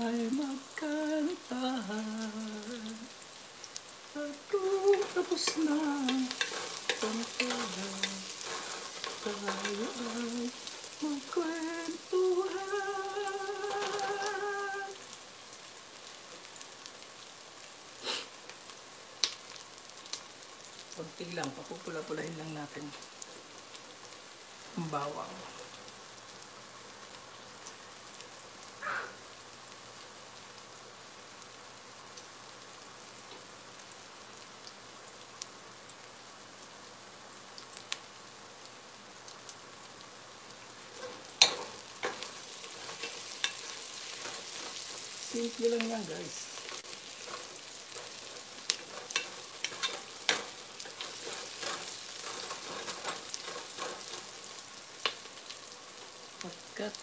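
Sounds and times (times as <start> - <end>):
onion and garlic sizzling in oil: 0.0 - 57.0.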